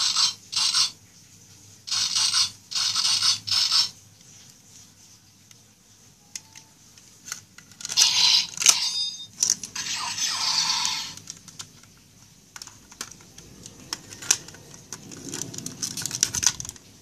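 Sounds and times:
plastic toy parts clicking: 0:09.4 - 0:16.8.

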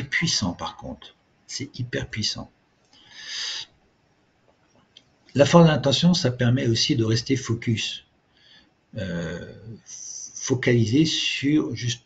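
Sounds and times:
man breathing in: 0:02.9 - 0:03.8, 0:08.3 - 0:08.8.

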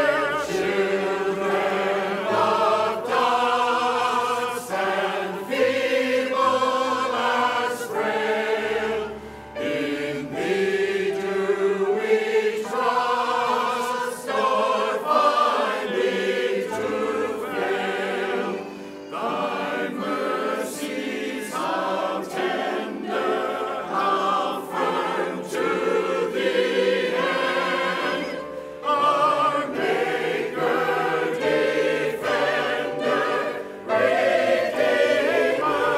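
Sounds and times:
choir singing a hymn: 0:00.0 - 0:35.9.

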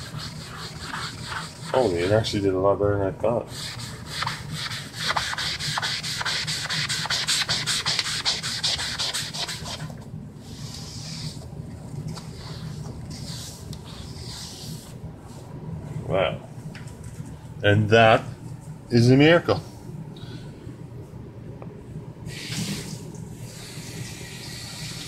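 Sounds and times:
foam scrubbing wooden tabletop: 0:00.0 - 0:02.2, 0:03.5 - 0:09.8, 0:12.3 - 0:14.9.

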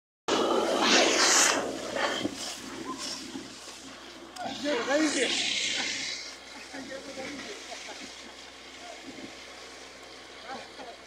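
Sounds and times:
water and air gushing from borehole: 0:00.3 - 0:11.0.

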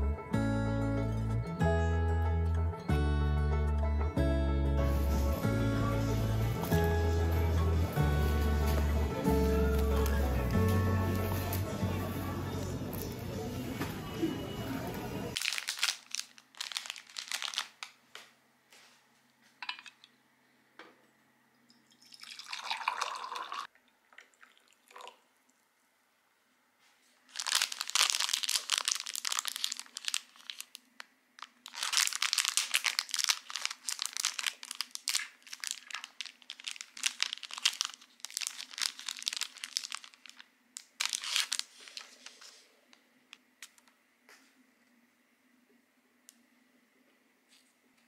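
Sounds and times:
plastic wrapper crinkling: 0:15.3 - 0:18.1, 0:27.2 - 0:43.9.

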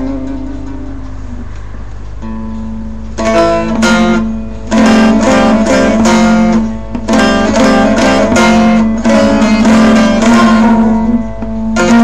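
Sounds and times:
long-necked lute plucked: 0:00.0 - 0:12.0.

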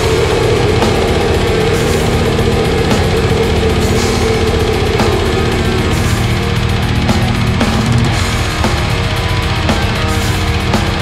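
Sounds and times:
black metal band playing: 0:00.0 - 0:11.0
distorted guitars: 0:00.0 - 0:11.0
fast drumming: 0:00.0 - 0:11.0.

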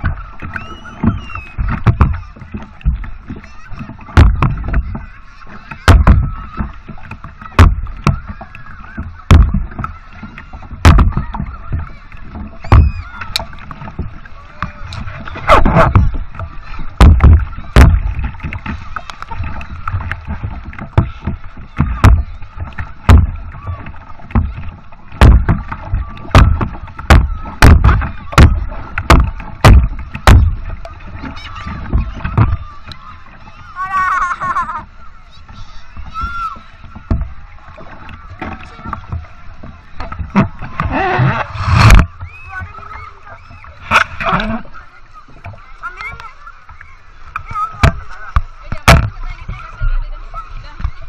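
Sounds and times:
paddle strokes splashing water: 0:00.0 - 0:51.0
water splashing against camera: 0:00.0 - 0:51.0.

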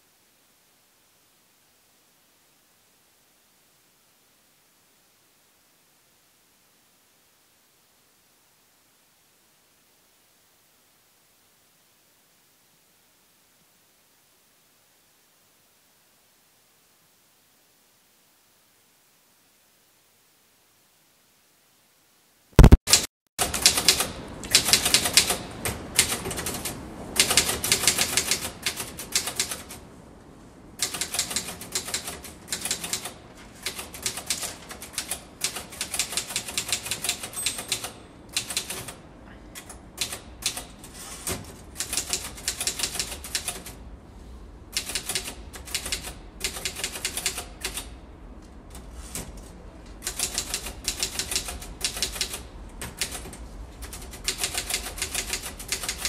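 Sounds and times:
typing on keys: 0:23.4 - 0:29.8, 0:30.8 - 0:39.0, 0:39.6 - 0:43.8, 0:44.8 - 0:48.0, 0:50.0 - 0:56.0.

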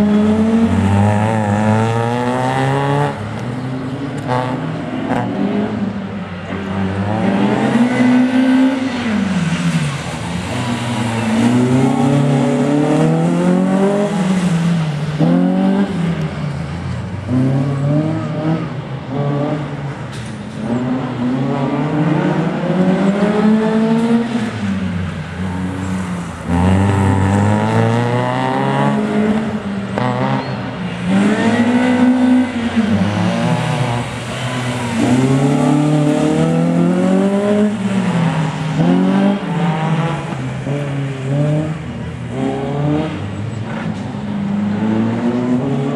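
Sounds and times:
car engines revving: 0:00.0 - 0:45.9.

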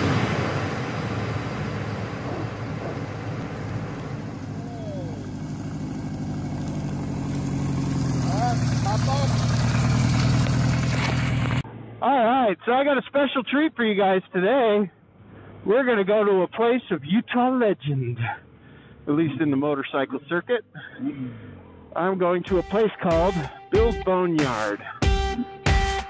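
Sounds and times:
motorcycle engine approaching: 0:00.0 - 0:12.0.

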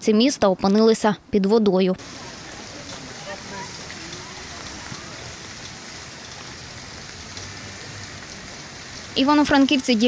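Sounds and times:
rain on water and pavement: 0:02.0 - 0:10.0.

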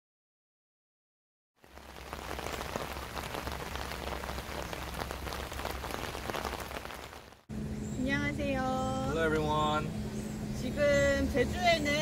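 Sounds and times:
steady rain: 0:01.6 - 0:07.5.

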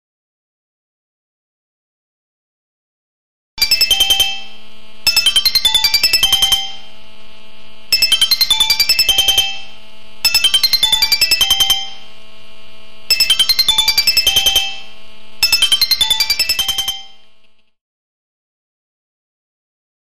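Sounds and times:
alarm clock beeping tune: 0:03.6 - 0:06.9, 0:07.9 - 0:12.1, 0:13.1 - 0:17.2
low steady hum: 0:03.6 - 0:17.7.

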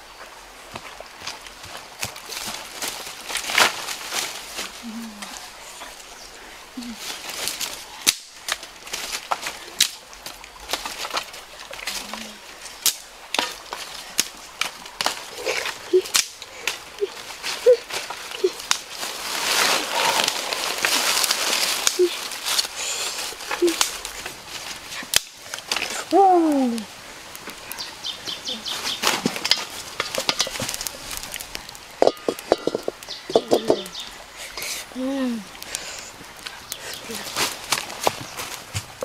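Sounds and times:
rustling: 0:00.8 - 0:06.1, 0:06.8 - 0:34.9, 0:35.6 - 0:39.0
dry sticks snapping: 0:07.4 - 0:18.9, 0:20.0 - 0:22.8, 0:23.4 - 0:27.9, 0:28.8 - 0:34.0.

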